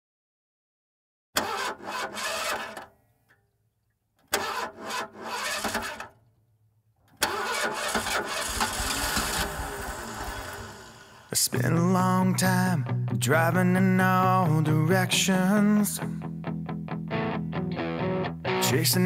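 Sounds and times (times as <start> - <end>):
car engine starter cranking: 1.4 - 3.0, 4.2 - 6.3, 7.1 - 11.4
car engine running: 7.8 - 11.3.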